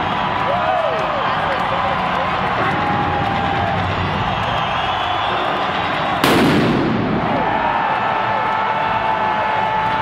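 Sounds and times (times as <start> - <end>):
crowd cheering and whistling: 0.0 - 10.0
pyrotechnic explosion: 6.1 - 7.8.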